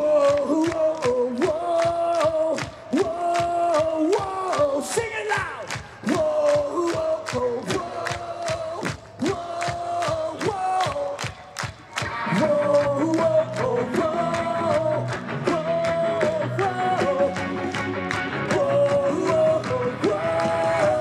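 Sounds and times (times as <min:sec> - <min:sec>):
crowd singing a chant: 0:06.0 - 0:11.2, 0:12.2 - 0:21.0
rock band playing: 0:13.6 - 0:20.0.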